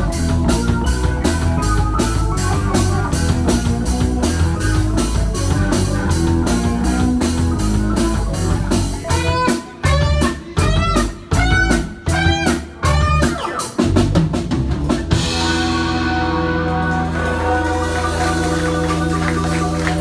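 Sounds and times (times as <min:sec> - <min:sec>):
instrumental rock band playing: 0:00.0 - 0:20.0.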